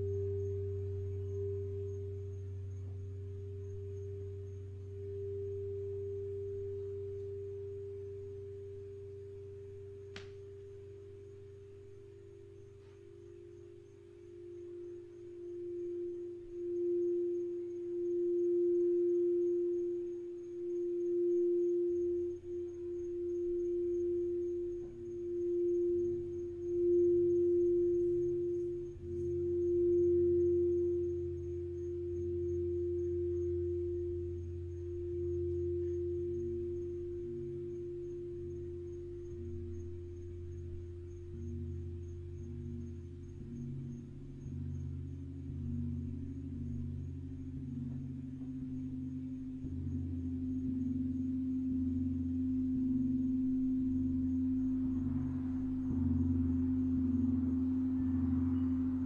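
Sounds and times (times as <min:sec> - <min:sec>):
low gong hum: 0:00.0 - 0:12.6, 0:14.6 - 0:59.0
singing bowl tone: 0:00.0 - 0:59.0.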